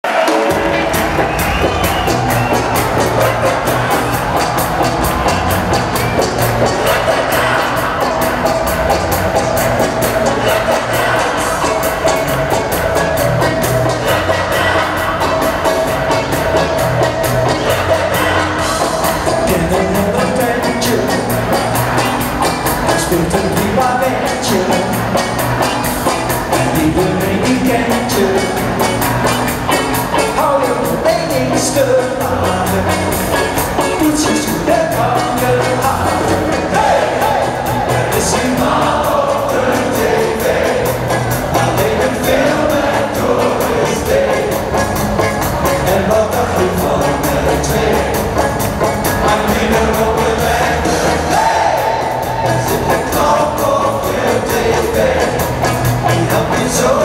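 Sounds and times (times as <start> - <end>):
live pop-rock band playing: 0.0 - 57.0.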